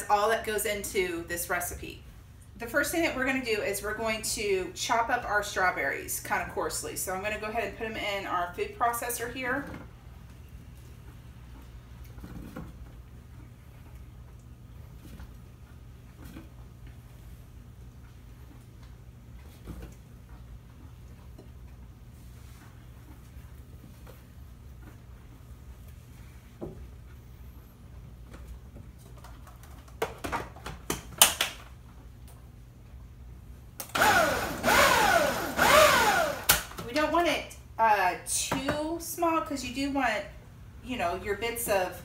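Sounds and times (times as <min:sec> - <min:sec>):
blender motor pulsing: 0:33.9 - 0:36.7.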